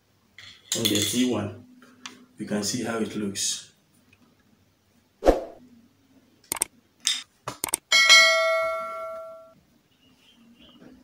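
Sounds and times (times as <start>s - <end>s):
sharp clicks: 6.5s - 6.7s, 7.6s - 7.8s.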